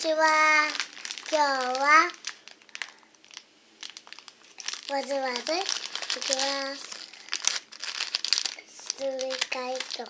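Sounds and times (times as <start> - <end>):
plastic candy packet crinkling: 0.0 - 10.0.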